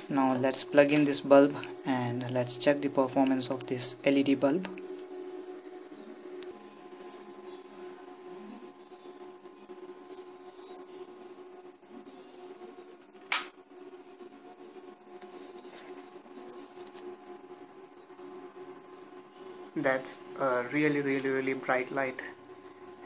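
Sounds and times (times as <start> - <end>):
faint steady hum: 0.0 - 23.0.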